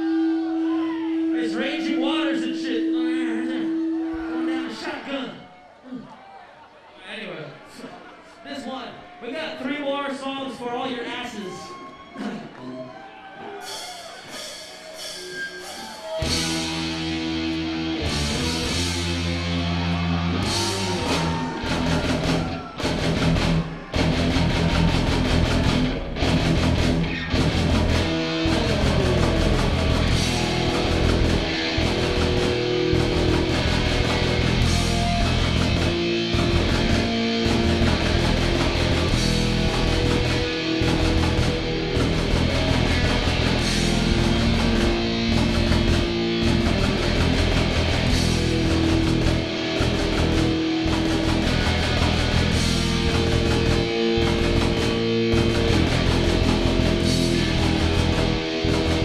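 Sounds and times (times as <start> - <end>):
rock band playing live: 13.6 - 59.0.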